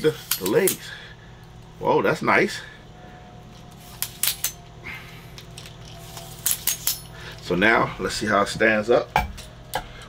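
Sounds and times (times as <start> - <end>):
metal tripod legs clicking: 5.4 - 7.1.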